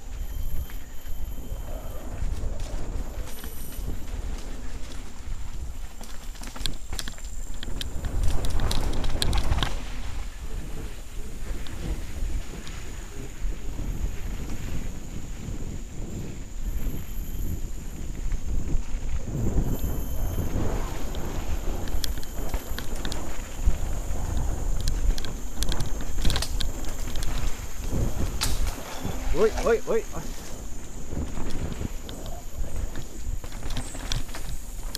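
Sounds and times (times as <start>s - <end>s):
wind buffeting microphone: 0.0s - 34.9s
bike clattering over rough trail: 2.2s - 15.6s, 17.6s - 34.9s.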